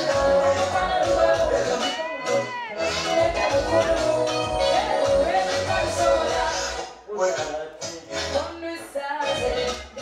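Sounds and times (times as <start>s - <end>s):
bass-heavy backing music: 0.0s - 10.0s
person singing into a microphone: 0.0s - 10.0s.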